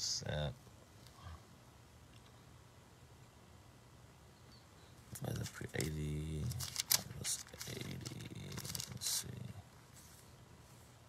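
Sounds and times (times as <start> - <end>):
man mumbling: 5.4 - 9.6.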